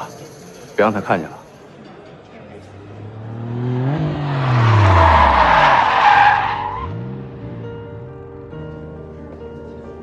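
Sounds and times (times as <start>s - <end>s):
second engine revving: 2.7s - 5.7s
sports car engine revving: 2.7s - 5.7s
tyre squeal: 4.3s - 6.9s.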